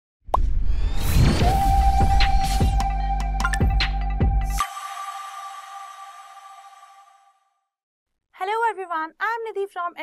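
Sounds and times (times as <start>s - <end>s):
rising whoosh: 0.4s - 3.2s
deep bass: 1.4s - 4.6s
electronic music: 1.4s - 7.3s.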